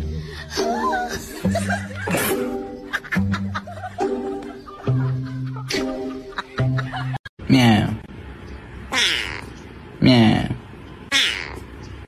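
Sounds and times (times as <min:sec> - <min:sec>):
kitten mewing: 0:08.9 - 0:09.5, 0:11.1 - 0:11.7.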